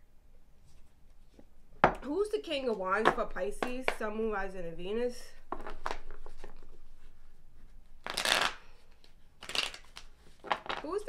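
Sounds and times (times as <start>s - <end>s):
riffle of cards: 8.0s - 8.8s, 9.4s - 10.9s.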